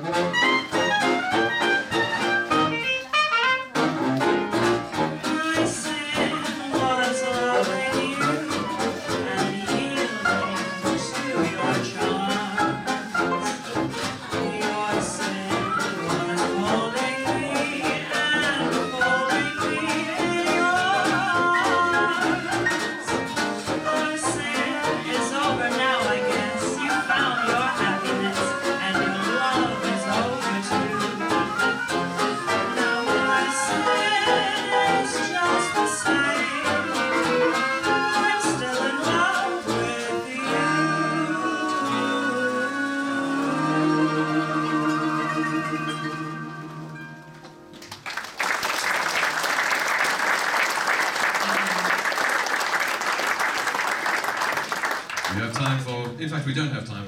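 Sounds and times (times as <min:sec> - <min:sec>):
small jazz band playing: 0:00.0 - 0:56.9
woman singing: 0:05.2 - 0:13.6, 0:14.2 - 0:47.2.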